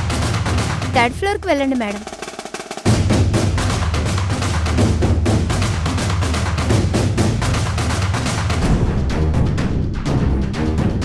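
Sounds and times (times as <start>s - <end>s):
fast percussion beat: 0.0s - 8.7s
dramatic orchestral music: 8.6s - 11.0s
heavy low drums: 8.6s - 11.0s.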